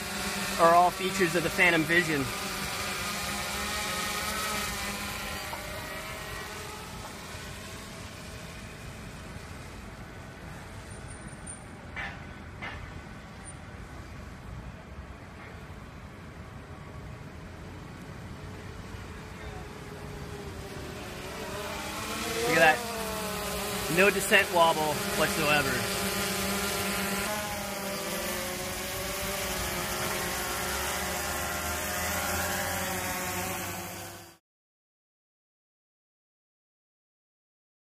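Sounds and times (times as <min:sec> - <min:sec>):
quadcopter motors humming: 0:00.0 - 0:11.9, 0:12.8 - 0:34.4.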